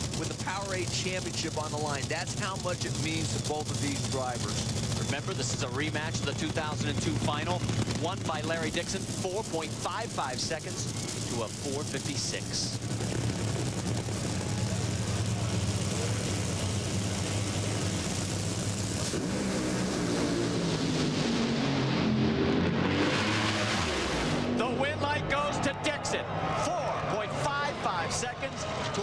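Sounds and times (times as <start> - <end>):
dragster engines roaring: 0.0 - 29.0.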